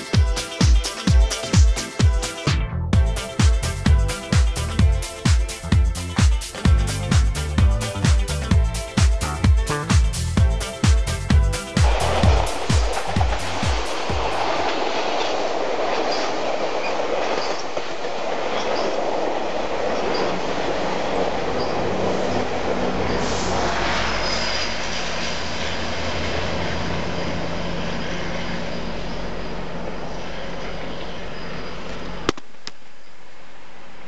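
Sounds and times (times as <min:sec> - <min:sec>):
locomotive engine drone: 0:02.7 - 0:16.4, 0:19.2 - 0:32.4
train wheels clicking over rail joints: 0:11.8 - 0:22.5
faint high wheel squeal: 0:27.1 - 0:32.2.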